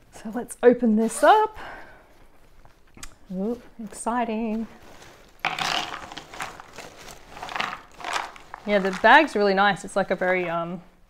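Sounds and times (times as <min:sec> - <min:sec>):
canvas bag rustling: 0:02.3 - 0:10.6
jigsaw pieces spilling: 0:05.1 - 0:09.4.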